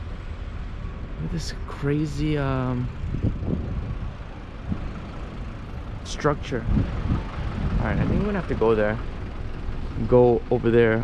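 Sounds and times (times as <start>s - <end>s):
low rumble of outdoor noise: 0.0s - 11.0s.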